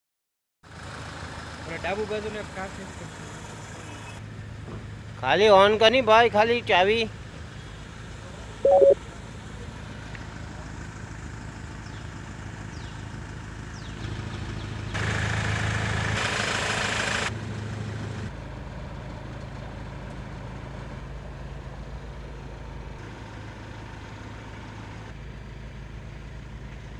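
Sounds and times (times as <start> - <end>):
diesel engine idling: 0.7 - 5.2, 8.0 - 26.9
brief loud tone: 8.6 - 9.0.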